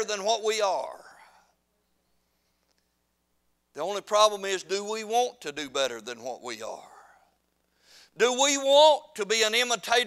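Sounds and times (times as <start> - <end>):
faint steady hum: 0.0 - 10.0
man's voice: 3.8 - 7.0.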